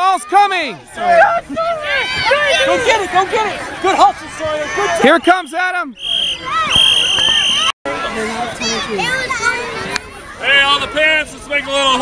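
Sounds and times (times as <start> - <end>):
children and adults shouting: 0.0 - 12.0
referee whistle blasts: 5.4 - 7.7.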